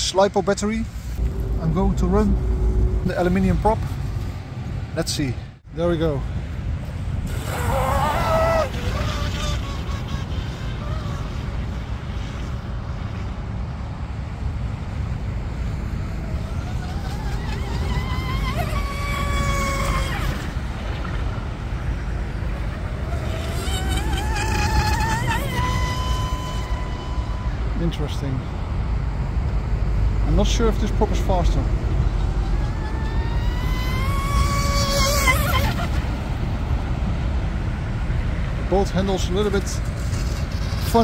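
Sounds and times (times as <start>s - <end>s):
constant low rumble: 0.0s - 41.0s
electric boat motor whining: 16.0s - 20.9s, 22.1s - 27.8s, 32.1s - 36.5s.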